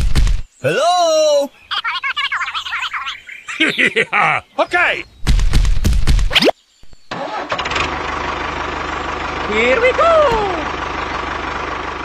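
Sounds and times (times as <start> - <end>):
tractor engine cranking: 7.1 - 12.0
tractor engine idling: 7.1 - 12.0.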